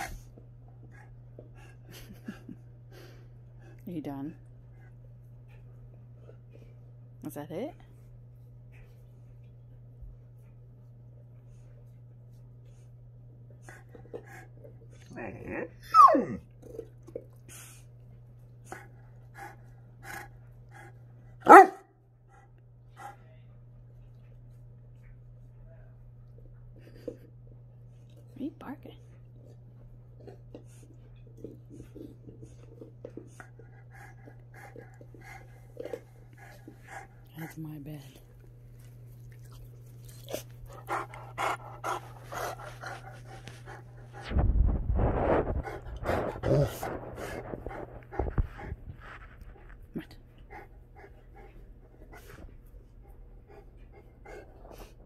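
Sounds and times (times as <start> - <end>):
dog panting: 0.0 - 7.0, 10.2 - 15.2, 16.6 - 25.6, 26.6 - 44.3, 45.2 - 55.0
microphone rubbing on fur: 42.5 - 50.0.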